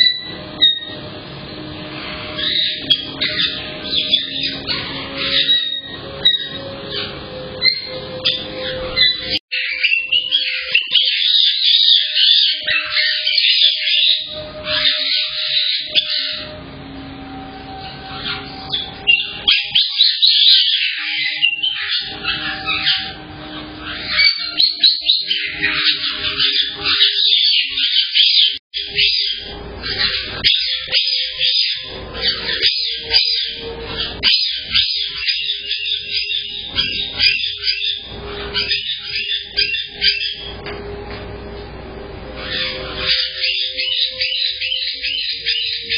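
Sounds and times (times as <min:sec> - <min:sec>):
parrot whistled notes: 0:00.0 - 0:41.0, 0:42.2 - 0:45.9
parrots chirping and screeching: 0:00.0 - 0:45.9.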